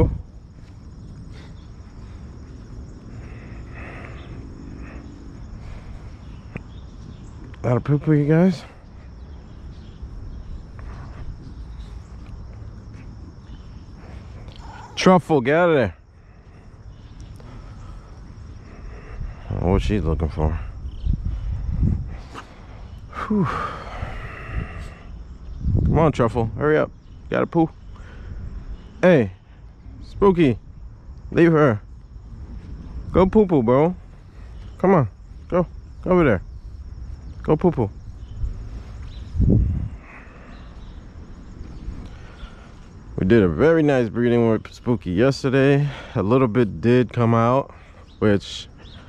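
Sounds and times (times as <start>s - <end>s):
insects chirring: 0.0s - 49.0s
man sighing: 23.1s - 24.7s.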